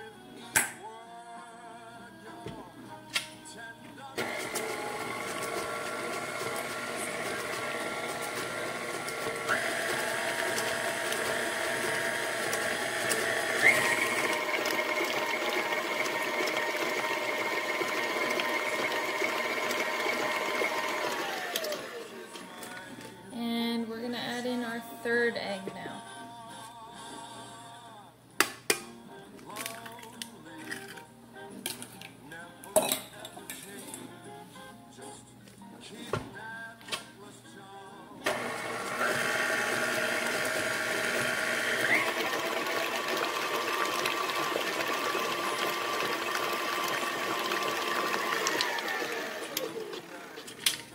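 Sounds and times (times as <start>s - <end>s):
stand mixer motor whining: 4.2s - 22.4s, 38.3s - 50.8s.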